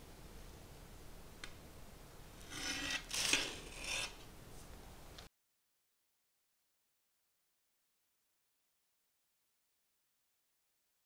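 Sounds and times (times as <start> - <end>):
metal server scraping ceramic plate: 2.4 - 4.2.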